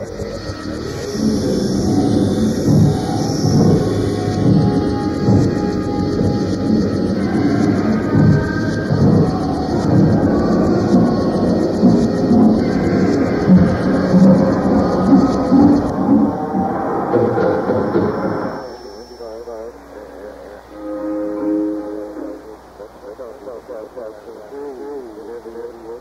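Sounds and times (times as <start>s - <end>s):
electronic music: 0.0s - 26.0s
warbling synth tone: 0.0s - 26.0s.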